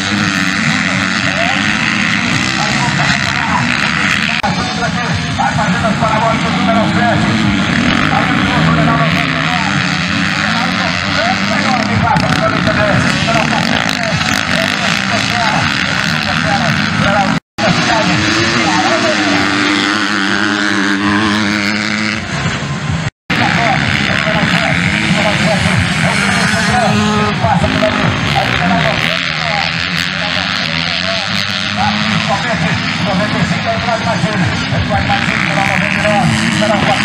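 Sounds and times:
motocross bikes revving: 0.0 - 37.0.

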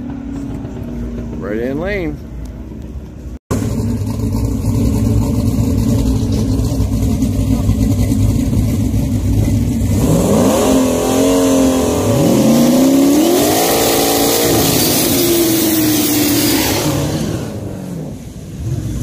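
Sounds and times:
race car engines idling: 0.0 - 10.2
engine revving: 3.5 - 19.0.

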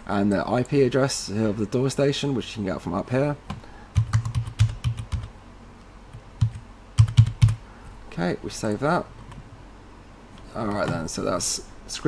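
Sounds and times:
keyboard keystrokes: 4.0 - 5.3.

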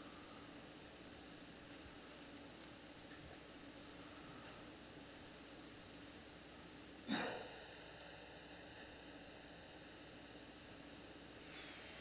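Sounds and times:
faint hiss with low hum: 0.0 - 12.0
soft noise with high whistle: 11.4 - 12.0.

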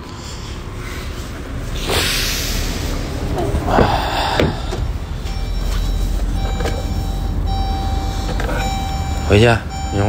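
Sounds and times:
diesel engine idling: 0.0 - 10.0.

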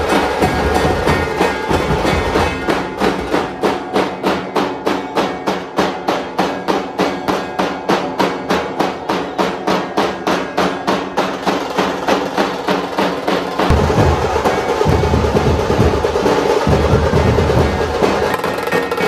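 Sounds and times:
dhol drums beaten with sticks: 0.0 - 19.0.

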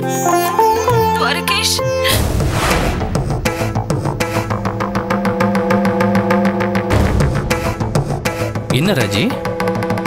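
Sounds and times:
dramatic background music: 0.5 - 10.0.

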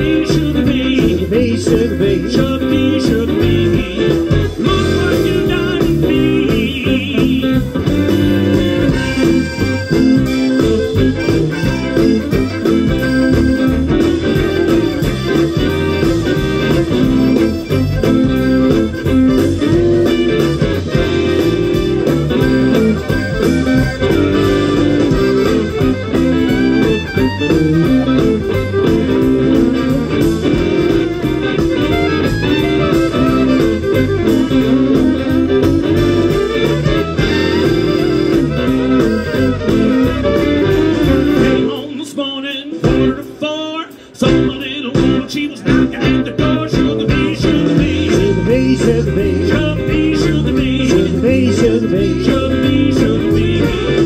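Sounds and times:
fiddle: 0.0 - 41.8
accordion: 0.0 - 54.0
drums: 0.0 - 54.0
electric guitars: 0.0 - 54.0
live band playing: 0.0 - 54.0.

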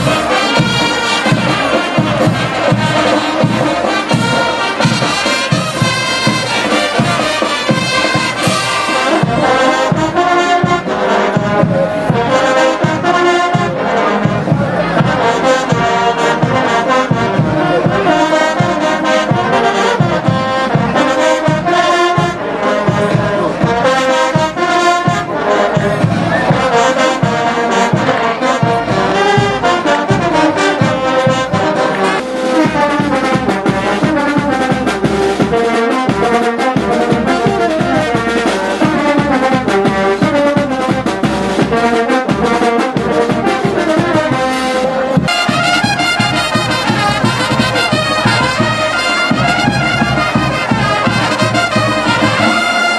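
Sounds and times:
brass band playing: 0.0 - 52.9
steady drumbeat: 0.0 - 52.9.

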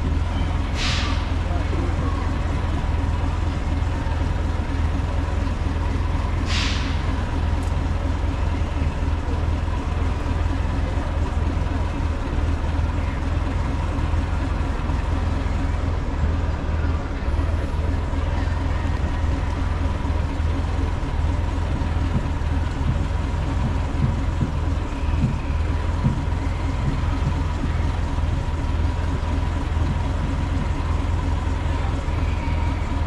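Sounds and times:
locomotive low rumble: 0.0 - 33.0
steam hissing: 6.4 - 7.0.

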